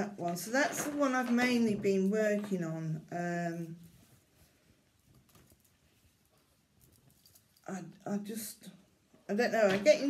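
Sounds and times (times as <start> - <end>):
fabric rustling and folding: 0.2 - 7.6.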